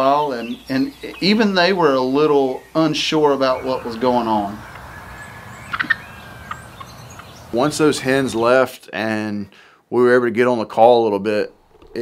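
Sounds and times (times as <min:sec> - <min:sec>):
wild turkey calling: 0:00.0 - 0:08.6.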